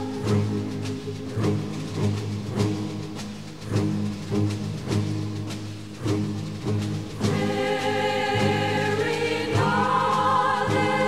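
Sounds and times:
choir singing held chords: 0.0 - 3.2, 6.7 - 11.0.

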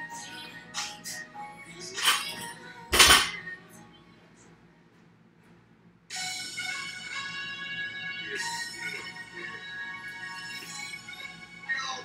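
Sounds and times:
barbell clank: 2.9 - 3.4.

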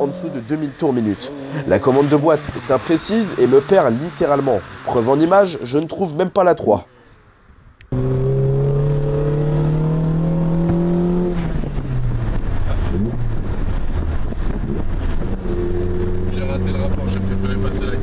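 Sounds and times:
car engine revving from inside cabin: 7.9 - 18.0.

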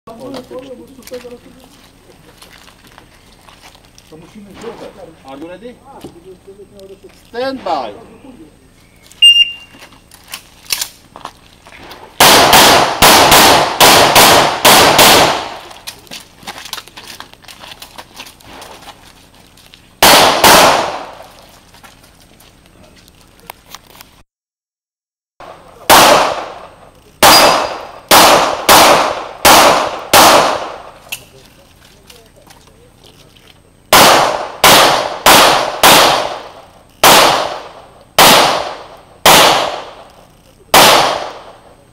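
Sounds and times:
handgun shots: 12.2 - 15.6, 20.0 - 21.2, 25.9 - 31.3, 33.9 - 40.0, 40.7 - 41.5.

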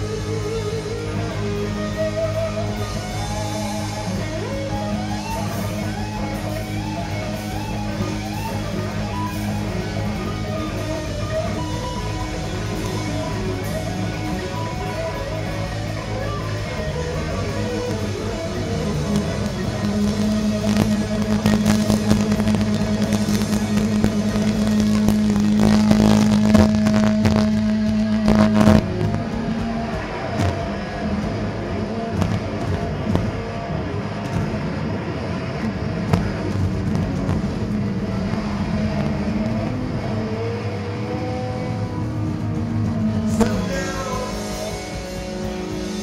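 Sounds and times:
distorted electric guitar note: 0.0 - 46.0
rock band playing: 0.0 - 46.0.

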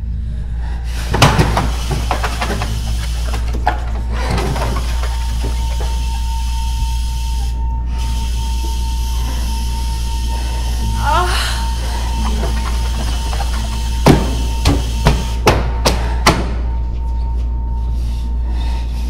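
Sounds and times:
low drone: 0.0 - 19.0
knocks and clatter: 1.1 - 6.4, 12.0 - 16.5.

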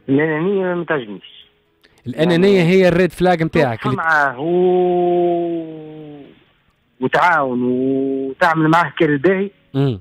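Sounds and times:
man saying uhh over telephone: 9.7 - 10.0.

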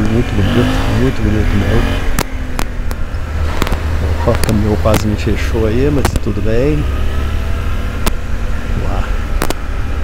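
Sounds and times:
motorcycle engine rumble: 0.0 - 10.0.

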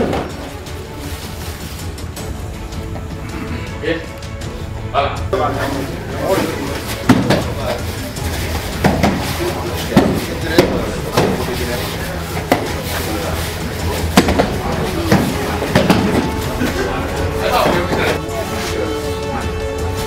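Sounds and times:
people talking at once: 4.9 - 20.0
sharp knocks and thuds: 7.0 - 7.6, 8.7 - 11.5, 12.4 - 12.9, 14.0 - 16.4.

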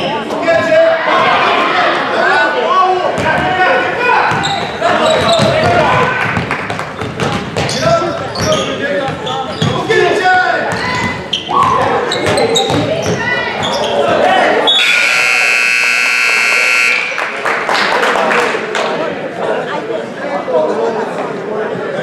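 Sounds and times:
voices: 0.0 - 17.3
basketball bouncing on gym floor: 4.3 - 9.9, 10.7 - 14.2
scoreboard buzzer: 14.7 - 17.2.

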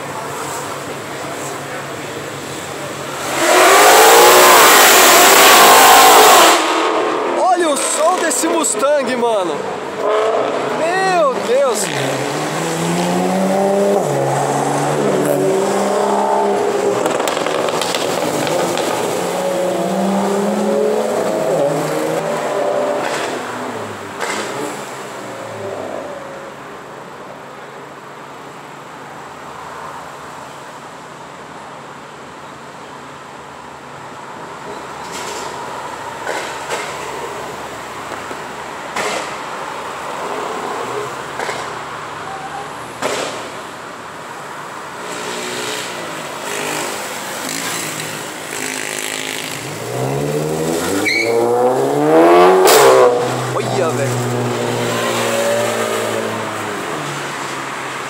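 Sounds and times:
car engine revving: 2.4 - 8.4, 9.9 - 26.0, 45.0 - 58.0
car accelerating through gears: 3.1 - 8.0, 11.4 - 26.2, 45.0 - 57.8.

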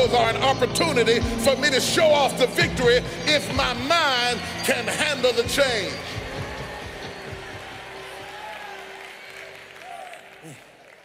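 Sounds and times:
crowd applause and cheering: 2.2 - 11.0.

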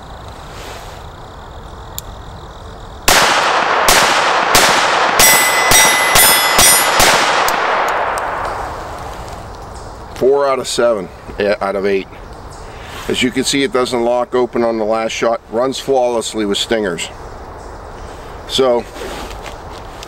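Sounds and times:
pistol shots: 3.1 - 9.1
steel target ringing: 4.3 - 8.6.

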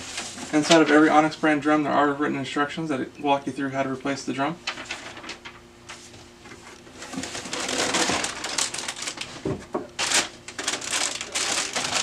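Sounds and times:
foil bag crinkling: 4.6 - 5.6, 7.0 - 12.0.

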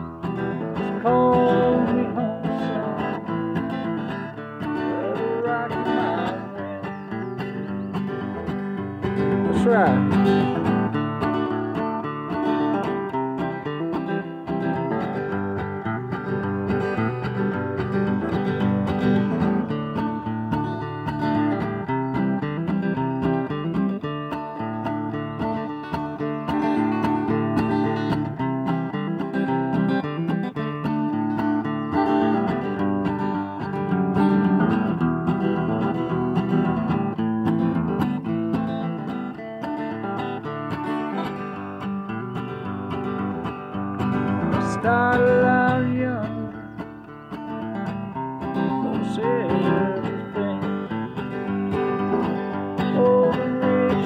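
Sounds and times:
acoustic guitar strummed: 0.0 - 54.0.

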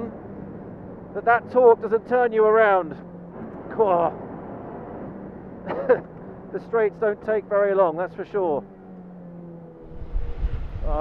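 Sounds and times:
race car engine and road noise: 0.0 - 11.0
person laughing: 5.6 - 6.1.

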